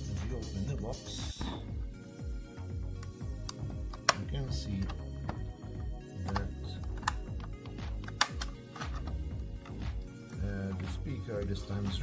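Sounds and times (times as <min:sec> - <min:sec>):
background music with bass beat: 0:00.0 - 0:12.0
plastic box clicks and snaps: 0:03.0 - 0:05.4, 0:06.2 - 0:07.3, 0:08.0 - 0:09.2.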